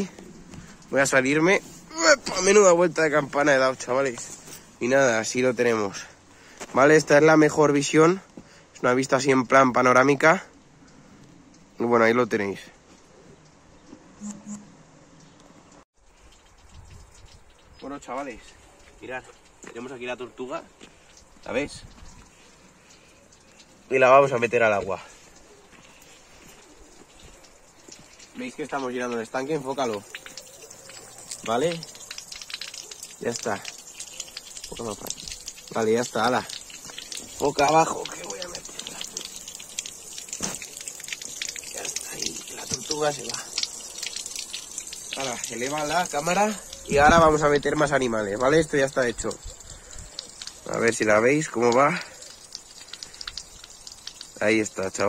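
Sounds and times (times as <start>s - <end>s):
water droplets splashing in pond: 0.0s - 11.8s, 13.0s - 55.0s.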